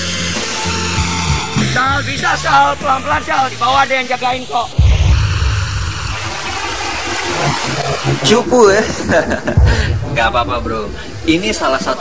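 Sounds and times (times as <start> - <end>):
flowing water rushing: 2.2 - 12.0.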